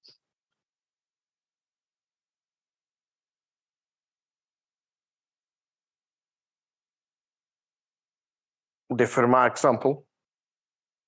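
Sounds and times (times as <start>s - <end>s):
man speaking: 8.9s - 10.1s.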